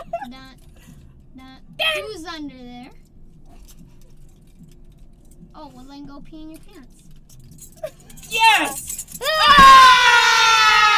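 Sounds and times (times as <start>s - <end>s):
high-pitched falling cry: 9.2s - 10.9s
thump: 9.5s - 9.9s.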